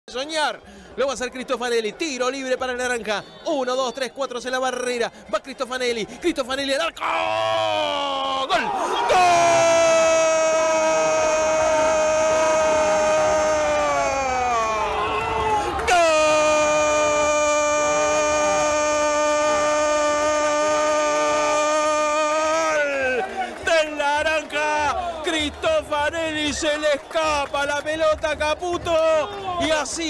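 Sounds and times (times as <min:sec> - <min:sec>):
faint crowd noise: 0:00.1 - 0:30.0
commentator shouting a long goal cry: 0:06.9 - 0:27.6.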